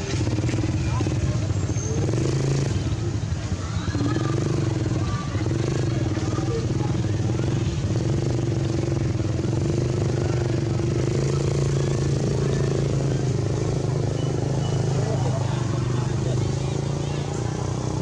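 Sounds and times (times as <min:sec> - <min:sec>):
people's voices: 0:00.0 - 0:18.0
vehicle engine running: 0:00.0 - 0:18.0.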